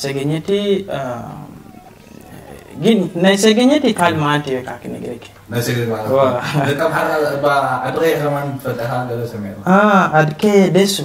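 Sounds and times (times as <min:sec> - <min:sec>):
man's wordless vocal calls: 0:01.0 - 0:05.4.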